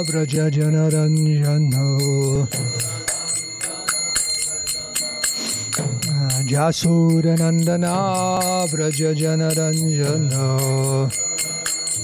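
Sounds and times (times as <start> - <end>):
hand cymbals struck: 0.0 - 12.0.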